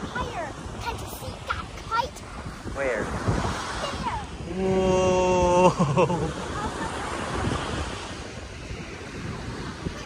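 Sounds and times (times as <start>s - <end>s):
child's voiced exclamation: 0.0s - 2.2s, 3.8s - 4.4s
surf washing on beach: 0.0s - 10.0s
wind buffeting microphone: 0.0s - 10.0s.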